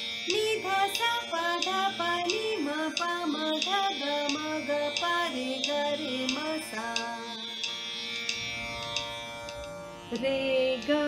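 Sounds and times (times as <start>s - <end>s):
held drone with plucked strings: 0.0s - 11.0s.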